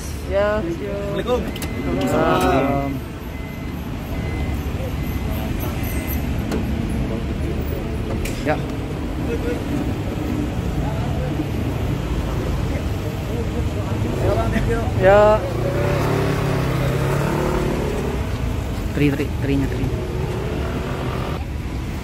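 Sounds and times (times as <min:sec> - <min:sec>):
voices: 0:00.0 - 0:21.6
street traffic rumble: 0:00.0 - 0:22.0
car engine idling: 0:17.9 - 0:21.4.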